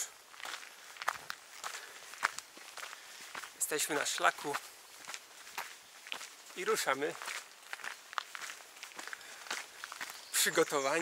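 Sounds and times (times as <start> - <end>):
footsteps on gravel path: 0.0 - 11.0.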